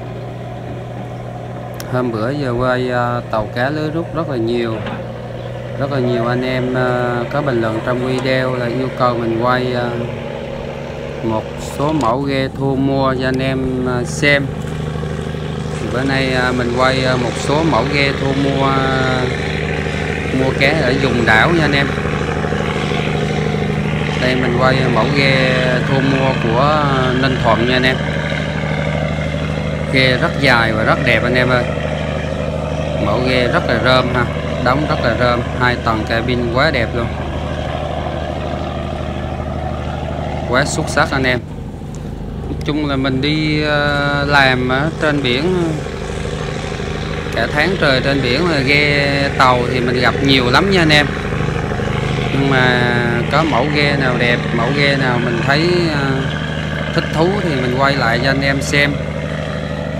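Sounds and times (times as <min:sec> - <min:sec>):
boat engine droning: 0:00.0 - 0:59.9
wind and water noise: 0:00.0 - 0:59.9.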